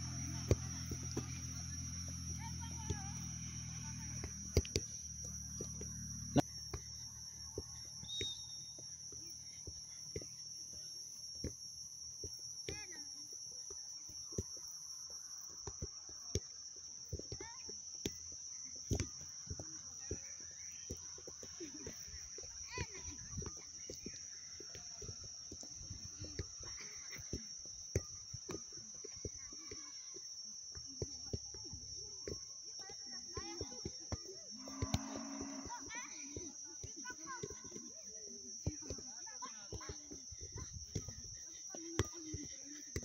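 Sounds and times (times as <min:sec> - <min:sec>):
ball taps and footsteps on grass: 0:00.4 - 0:01.6, 0:02.4 - 0:03.2, 0:03.9 - 0:43.0.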